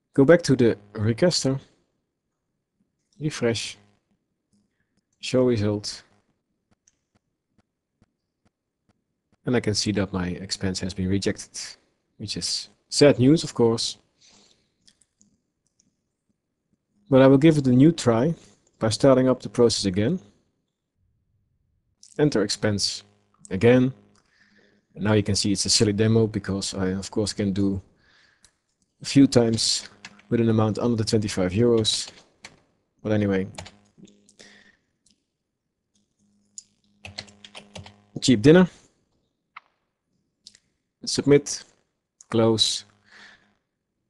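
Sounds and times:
keyboard keystrokes: 0:37.0 - 0:37.9.

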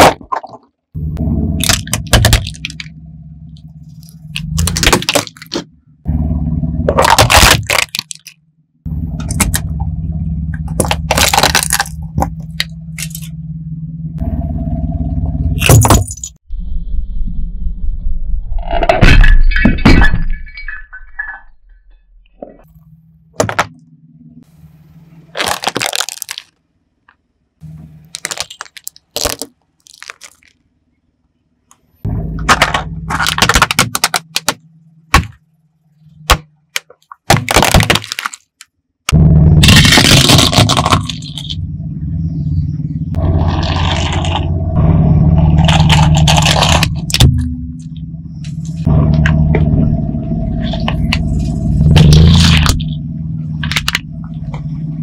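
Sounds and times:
low hum: 0:01.0 - 0:28.9, 0:30.7 - 0:36.8, 0:39.1 - 0:55.0
plastic toy car crunching: 0:01.6 - 0:02.9, 0:03.9 - 0:05.7, 0:06.9 - 0:08.4, 0:09.2 - 0:09.7, 0:10.6 - 0:13.3, 0:25.3 - 0:27.2, 0:27.8 - 0:30.7, 0:32.4 - 0:35.4, 0:36.2 - 0:41.6, 0:43.4 - 0:44.5, 0:45.3 - 0:47.9, 0:50.6 - 0:53.0, 0:53.6 - 0:54.0.

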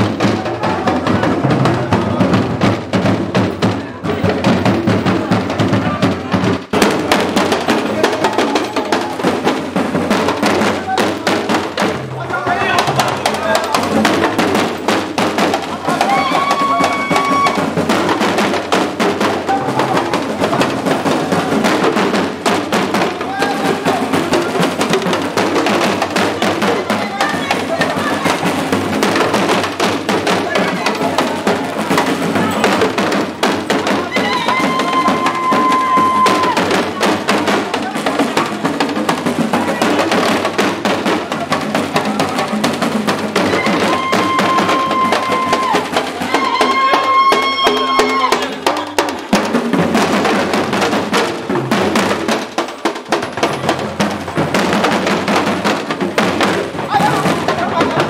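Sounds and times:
drum ensemble playing dance rhythm: 0:00.0 - 0:58.0
voices among drumming: 0:00.0 - 0:58.0.

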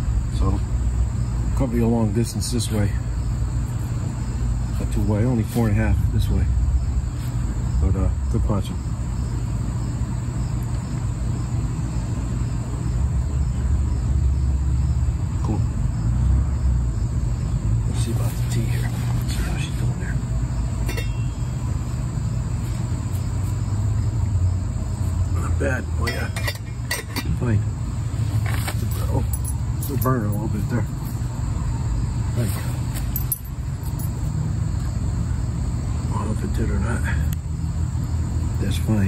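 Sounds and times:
steady low rumble: 0:00.0 - 0:39.0.

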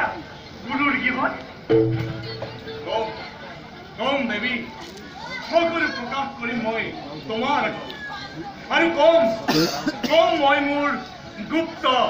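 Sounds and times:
short cough: 0:09.5 - 0:10.2.

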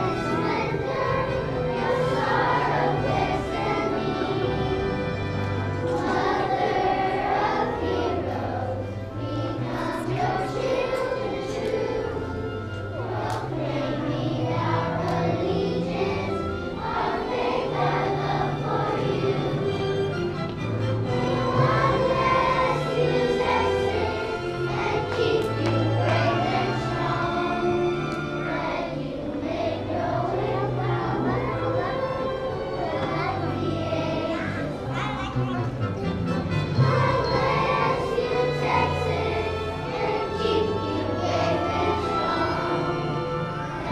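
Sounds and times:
children's choir singing: 0:00.0 - 0:43.9
low instrumental accompaniment: 0:00.0 - 0:43.9.

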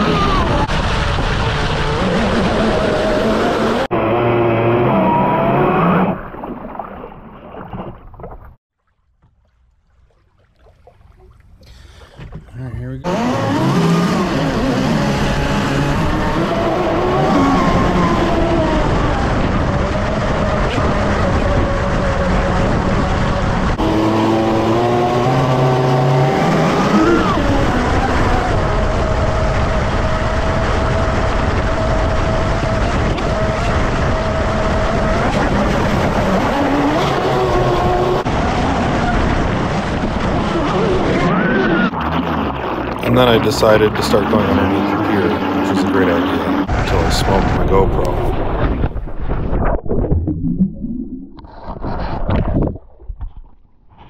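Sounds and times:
electric motor whining: 0:13.0 - 0:39.4.

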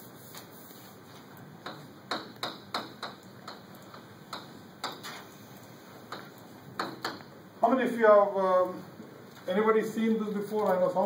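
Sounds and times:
chalk tapping on blackboard: 0:01.6 - 0:05.3.

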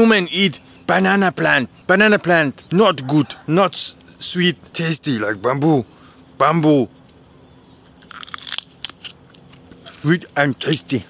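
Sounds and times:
teeth crunching bamboo shoot: 0:07.9 - 0:10.1.

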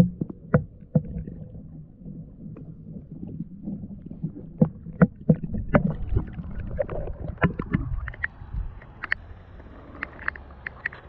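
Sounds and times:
muffled underwater rumble: 0:00.0 - 0:11.0.

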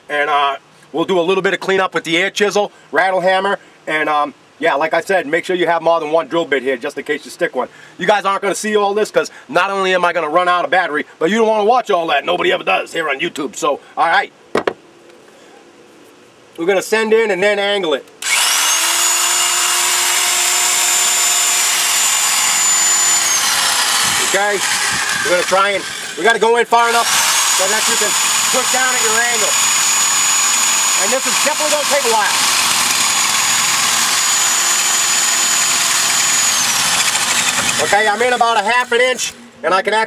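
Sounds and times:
electric drill boring into concrete: 0:18.2 - 0:39.4.

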